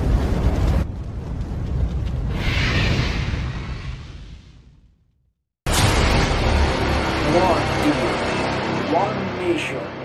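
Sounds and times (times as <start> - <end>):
deep rumbling roar of flames: 0.0 - 5.0
hissing whoosh: 2.3 - 4.8.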